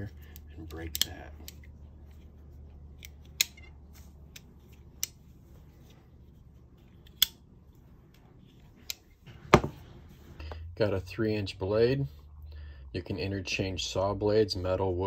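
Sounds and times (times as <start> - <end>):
tool knocking on table: 9.5 - 9.8.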